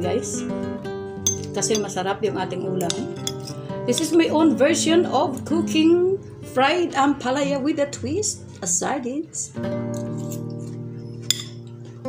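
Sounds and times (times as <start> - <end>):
acoustic guitar strumming: 0.0 - 2.1, 9.6 - 12.0
cutlery clinking against dish: 1.3 - 1.9, 2.8 - 4.1, 11.2 - 11.6.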